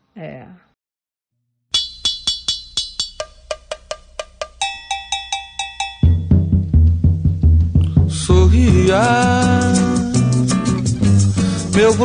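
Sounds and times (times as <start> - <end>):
metal percussion bell strikes: 1.8 - 6.7
samba band playing: 3.9 - 9.0.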